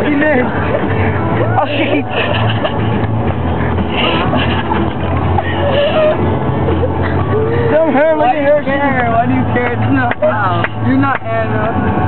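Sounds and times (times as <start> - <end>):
boys laughing: 0.0 - 8.6
road and engine drone: 0.0 - 12.0.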